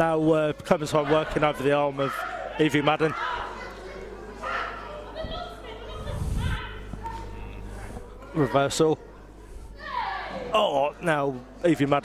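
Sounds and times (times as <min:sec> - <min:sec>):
crowd voices echoing: 0:00.0 - 0:11.6.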